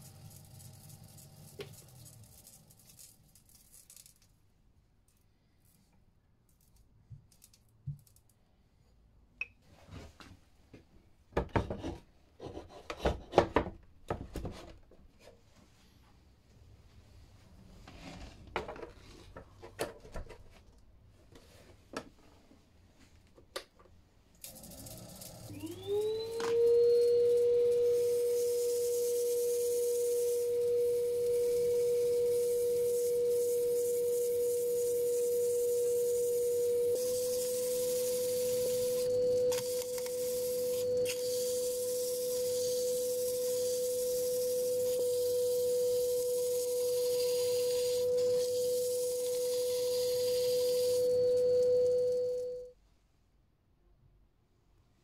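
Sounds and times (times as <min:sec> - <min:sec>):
wood lathe motor whining: 0:24.8 - 0:52.0
sandpaper hissing on spinning wood: 0:27.9 - 0:51.0.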